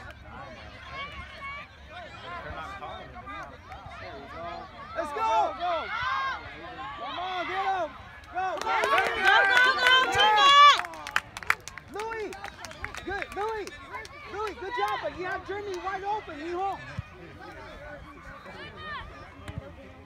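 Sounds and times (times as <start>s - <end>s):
children shouting on a field: 0.3s - 11.1s, 12.0s - 19.9s.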